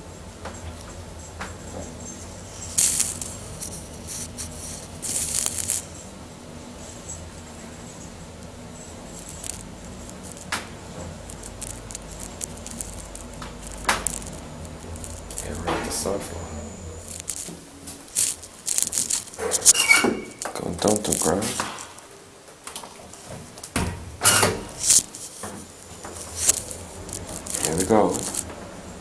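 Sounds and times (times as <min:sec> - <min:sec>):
elevator cab hum: 0:03.4 - 0:20.4.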